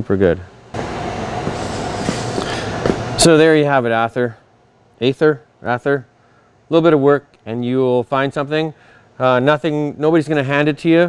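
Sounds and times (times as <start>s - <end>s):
faint constant whine: 0.0s - 11.0s
loud rushing machine noise: 0.8s - 3.3s.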